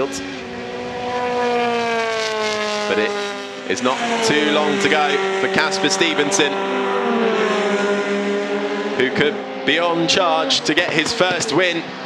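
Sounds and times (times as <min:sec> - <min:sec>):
race car engine running hard: 0:00.0 - 0:12.0.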